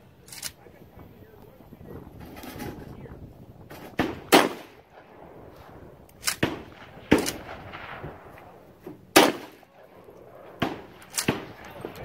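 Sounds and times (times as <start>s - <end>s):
shotgun shots with echo: 3.8s - 5.2s, 6.2s - 11.6s.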